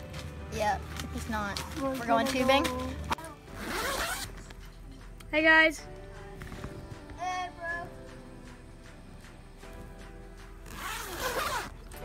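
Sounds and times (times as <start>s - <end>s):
tent zipper pulled: 3.5s - 4.4s, 10.6s - 11.8s.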